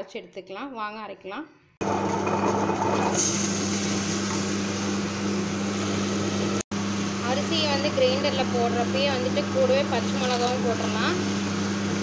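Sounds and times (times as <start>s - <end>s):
wet grinder motor humming: 1.8s - 12.0s.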